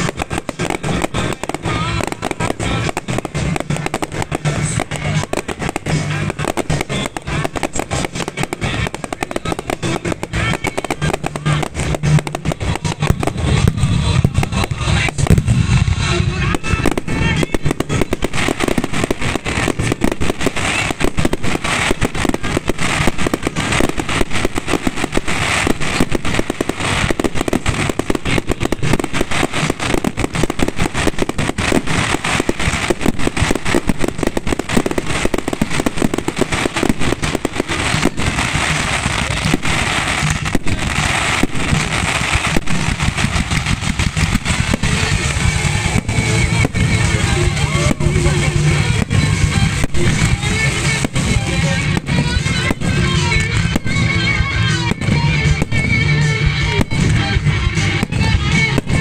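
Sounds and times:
fireworks cracking and banging: 0.0 - 59.0
loud music: 0.0 - 59.0.

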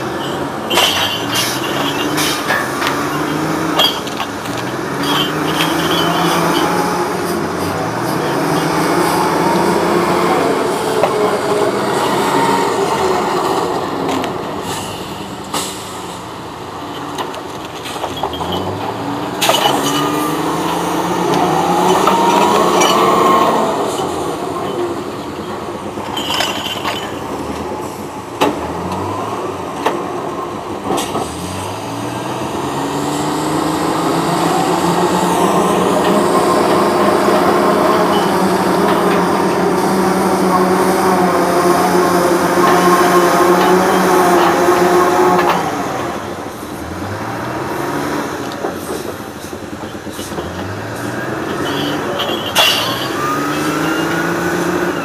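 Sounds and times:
diesel engine revving under load: 0.0 - 55.0.

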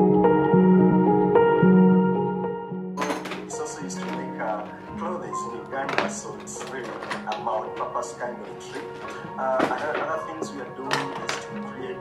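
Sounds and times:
soft background music: 0.0 - 12.0
podcast speech: 3.0 - 12.0
light clicks and knocks: 5.6 - 11.7.

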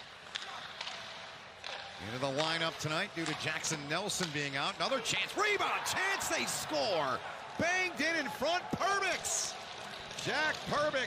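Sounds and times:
hockey sticks and puck clicks: 0.0 - 5.0, 8.8 - 11.0
crowd noise: 0.0 - 11.0.

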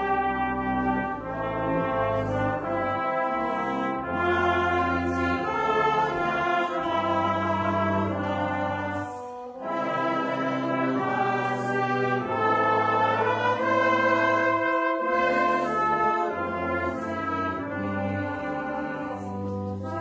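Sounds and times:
brass band playing slow chords: 0.0 - 20.0.

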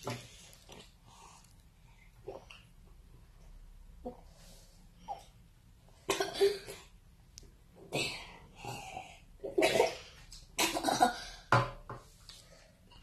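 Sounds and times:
child coughing: 6.1 - 6.9, 9.5 - 11.4.

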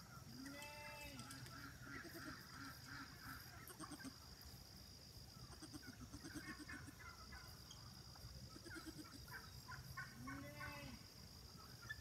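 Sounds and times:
faint farm animal calls: 0.0 - 4.6, 5.2 - 12.0.

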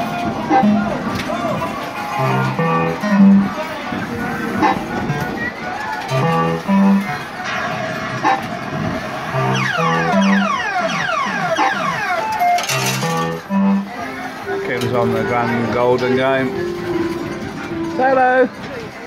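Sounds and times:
fruit machine electronic tunes: 0.0 - 1.0, 1.7 - 3.6, 6.1 - 7.6, 8.2 - 18.4.

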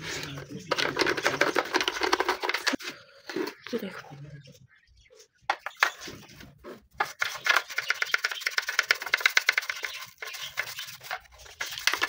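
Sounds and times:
toothbrush scrubbing plastic: 0.6 - 2.8, 6.9 - 12.0.

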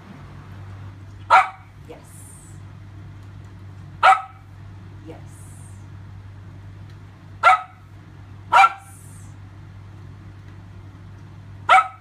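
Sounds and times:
steady low hum: 0.0 - 12.0
dog barking: 1.3 - 1.7, 4.0 - 4.5, 7.4 - 7.8, 8.5 - 9.0, 11.7 - 12.0.

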